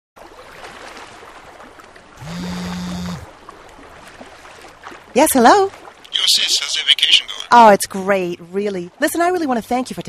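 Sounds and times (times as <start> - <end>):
lake water lapping: 0.2 - 10.0
phone vibrating on wooden table: 2.2 - 3.3.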